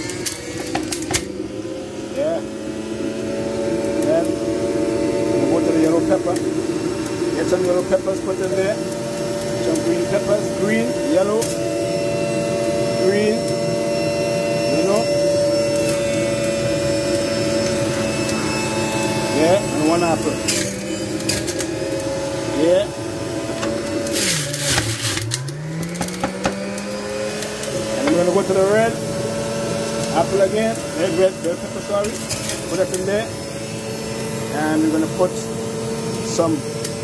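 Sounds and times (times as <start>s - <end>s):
juicer motor whine: 0.0s - 37.0s
produce shredding: 17.1s - 33.3s.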